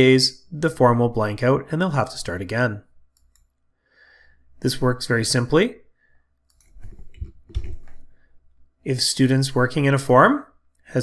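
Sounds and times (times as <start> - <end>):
man speaking: 0.0 - 2.9, 4.6 - 5.9, 8.8 - 11.0
computer mouse clicks: 3.1 - 3.6, 6.4 - 8.0.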